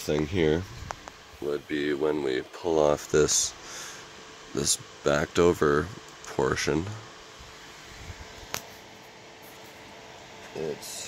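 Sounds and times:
faint steady hum and hiss: 0:00.0 - 0:11.0.

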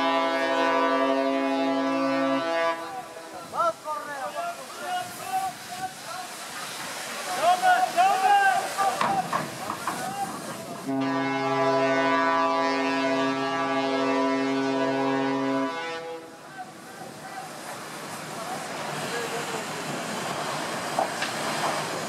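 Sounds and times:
ship horn blast: 0:00.0 - 0:03.3, 0:10.8 - 0:16.5
people shouting: 0:07.3 - 0:09.3.

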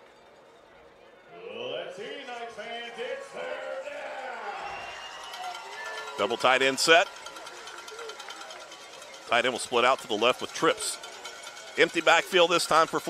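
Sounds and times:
stadium background: 0:00.0 - 0:13.0.

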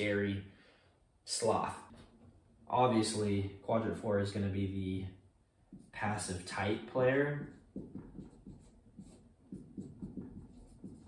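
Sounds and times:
marker scratching on whiteboard: 0:05.7 - 0:11.0.

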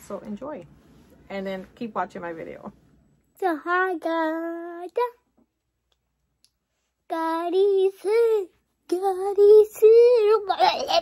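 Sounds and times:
boy singing: 0:03.4 - 0:05.2, 0:07.1 - 0:11.0.

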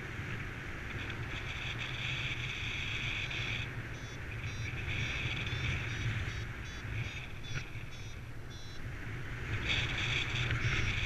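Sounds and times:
wind rushing over microphone: 0:00.0 - 0:11.0
variometer electronic beeps: 0:01.8 - 0:09.0, 0:09.6 - 0:11.0.

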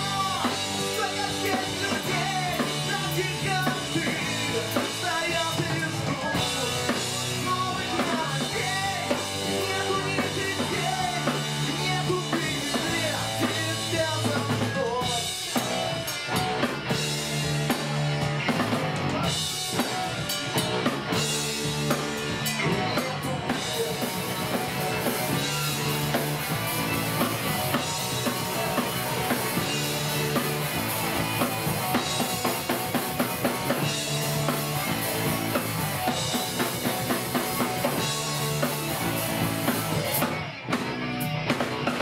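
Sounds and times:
man singing: 0:00.0 - 0:15.7, 0:22.4 - 0:26.0, 0:27.7 - 0:30.4
ska-punk band playing: 0:00.0 - 0:42.0.

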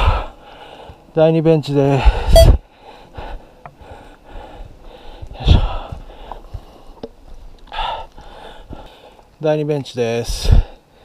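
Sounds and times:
person breathing hard: 0:00.0 - 0:01.1, 0:02.0 - 0:07.0, 0:07.7 - 0:09.2.

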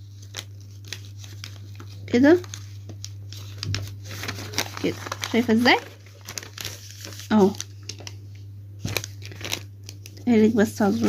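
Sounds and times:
paper rustling and crinkling: 0:00.0 - 0:11.0.

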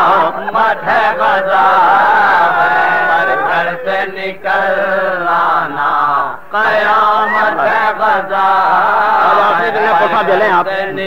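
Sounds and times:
man chanting a recitation: 0:00.0 - 0:11.0.

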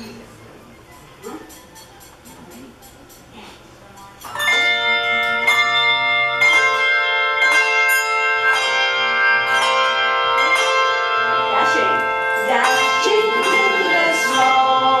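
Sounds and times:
handbell choir playing: 0:04.2 - 0:15.0.

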